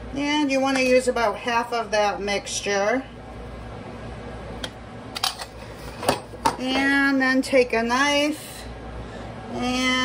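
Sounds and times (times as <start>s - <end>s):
quiet kitchen background: 0.0s - 10.0s
kitchenware clinking: 5.2s - 7.0s.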